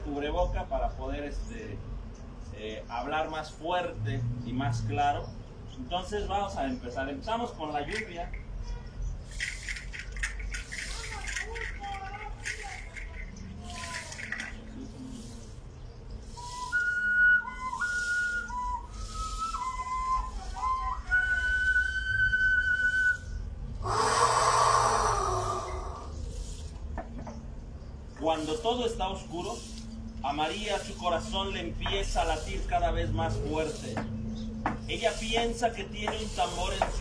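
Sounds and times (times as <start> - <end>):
hand shaker rattling: 7.7 - 26.9
small whistle playing a tune: 16.4 - 23.5
loud rushing hiss: 23.8 - 26.7.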